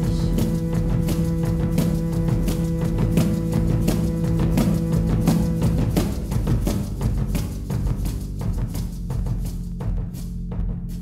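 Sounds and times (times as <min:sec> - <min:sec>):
low held drone: 0:00.0 - 0:07.2
percussive clicks and drum hits: 0:00.0 - 0:11.0.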